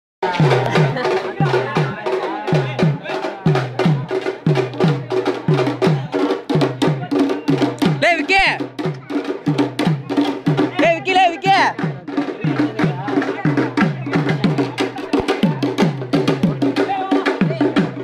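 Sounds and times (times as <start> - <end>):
drums beating fast rhythm: 0.2 - 18.0.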